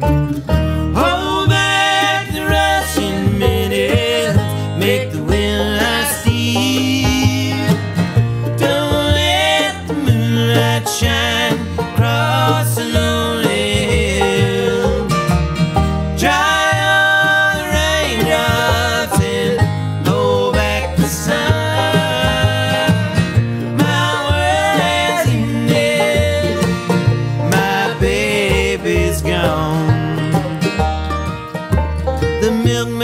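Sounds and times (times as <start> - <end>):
bluegrass band playing: 0.0 - 33.0
two voices singing in harmony: 0.9 - 7.9, 8.5 - 15.2, 15.8 - 30.6.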